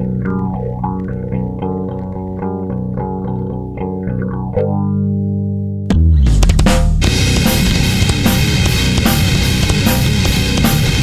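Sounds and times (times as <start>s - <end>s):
bass guitar picking notes: 0.0s - 11.0s
electric guitar with effects: 0.0s - 11.0s
sharp drum hit: 5.9s - 11.0s.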